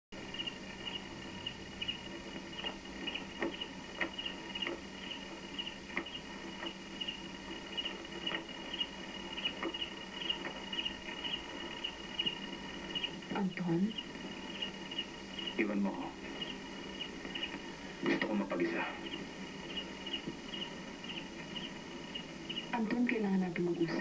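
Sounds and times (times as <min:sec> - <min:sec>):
crickets chirping: 0:00.2 - 0:24.0.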